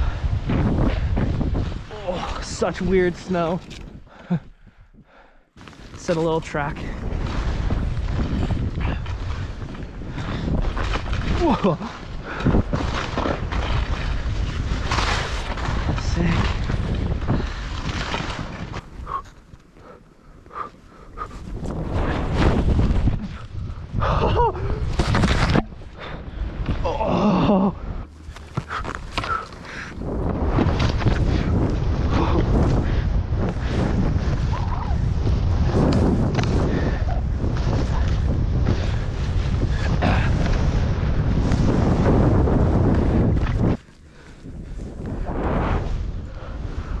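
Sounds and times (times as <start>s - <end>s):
wind buffeting microphone: 0.0s - 5.2s, 6.2s - 47.0s
skis running through powder snow: 5.6s - 19.8s, 20.6s - 26.2s, 27.8s - 47.0s.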